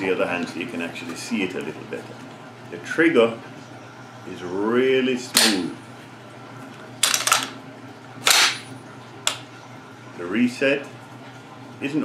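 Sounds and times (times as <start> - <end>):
rifle bolt slamming forward: 8.2 - 8.6.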